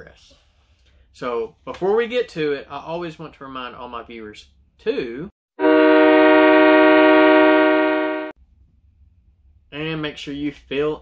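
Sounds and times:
train horn chord: 5.6 - 8.4.

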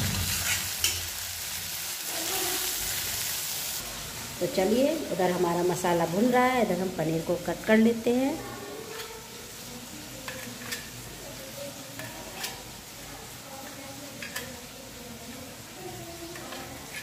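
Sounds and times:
onion frying in oil sizzling: 0.0 - 17.0.

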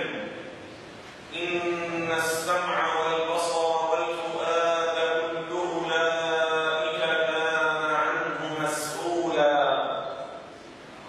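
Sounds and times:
man chanting through microphone: 0.0 - 0.6, 1.3 - 10.6.

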